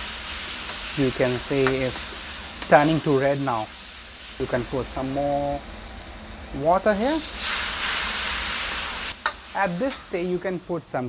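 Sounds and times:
curry paste hissing and sizzling: 0.0s - 11.0s.

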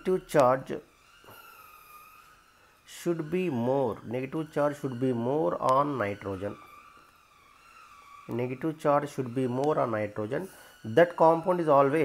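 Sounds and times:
faint steady background tone: 0.0s - 12.0s.

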